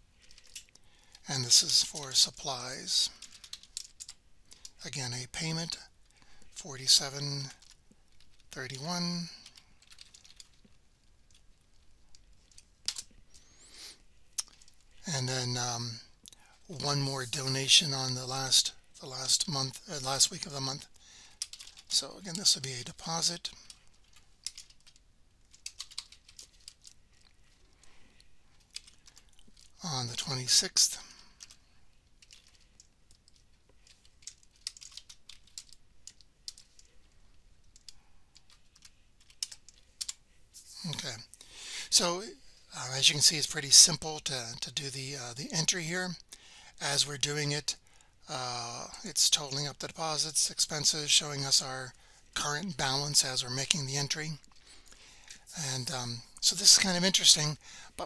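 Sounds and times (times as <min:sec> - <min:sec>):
typing on computer keyboard: 0:23.6 - 0:26.9, 0:32.2 - 0:36.8
sharp keyboard clicks: 0:24.1 - 0:26.9, 0:33.3 - 0:36.8.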